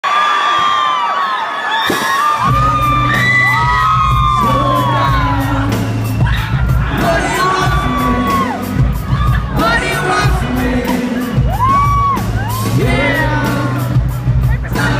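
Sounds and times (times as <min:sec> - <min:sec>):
crowd screaming and cheering: 0:00.0 - 0:14.9
live band playing: 0:01.9 - 0:14.9.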